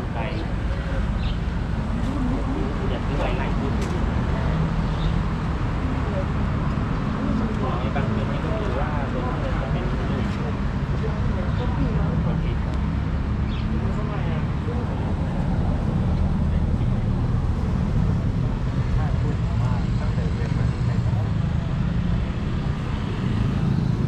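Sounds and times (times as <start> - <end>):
people talking: 0.0 - 12.9, 13.5 - 23.2.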